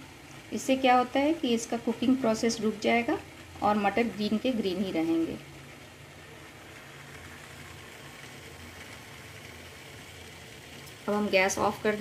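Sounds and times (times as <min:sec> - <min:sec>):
faint hiss: 0:00.0 - 0:12.0
low mechanical hum: 0:00.0 - 0:12.0.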